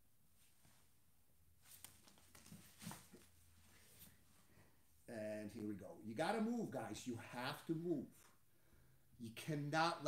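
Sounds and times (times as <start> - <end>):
bodies rustling on foam mat: 1.6 - 4.7.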